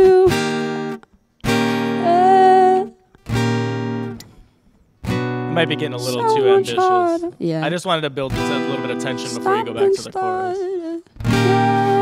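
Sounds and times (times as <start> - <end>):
acoustic guitar strummed chords: 0.0 - 7.3, 8.2 - 10.6, 11.2 - 12.0
woman singing held note: 6.1 - 7.6.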